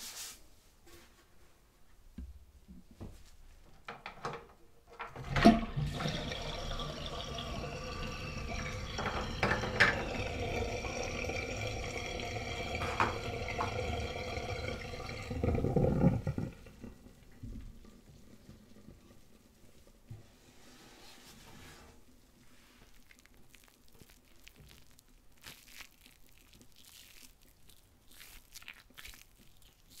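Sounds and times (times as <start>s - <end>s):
water draining down sink: 5.0s - 19.4s
drain gurgle: 5.1s - 19.6s.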